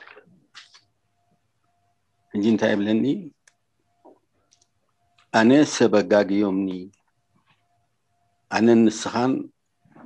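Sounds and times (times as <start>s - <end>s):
man speaking: 2.3s - 3.4s, 5.3s - 7.0s, 8.5s - 9.5s.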